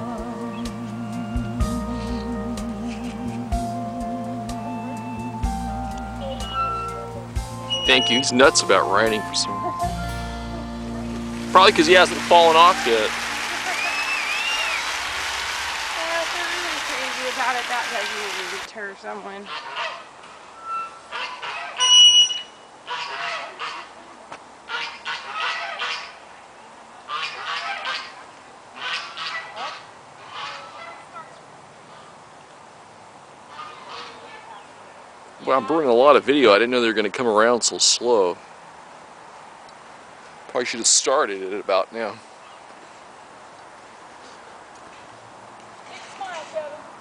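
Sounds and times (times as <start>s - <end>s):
shrill steady tone: 0.0s - 16.9s
geese honking: 0.0s - 18.7s, 19.4s - 23.9s, 24.7s - 26.2s, 27.1s - 28.2s, 28.8s - 31.3s, 33.5s - 34.5s
faint outdoor background hiss: 0.0s - 47.0s.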